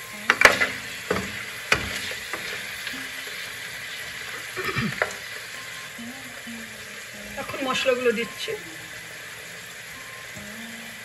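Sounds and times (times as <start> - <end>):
spatula stirring in pan: 0.0 - 6.0
potatoes sizzling in oil: 0.0 - 11.0.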